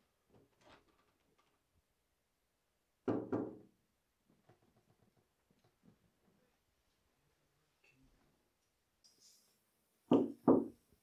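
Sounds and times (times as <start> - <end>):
loud knocks on a door: 3.0 - 3.7, 10.1 - 10.7.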